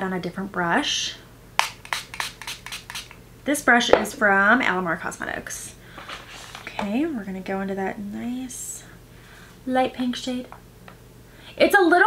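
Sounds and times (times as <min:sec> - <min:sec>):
spray bottle hisses: 0:01.6 - 0:03.2.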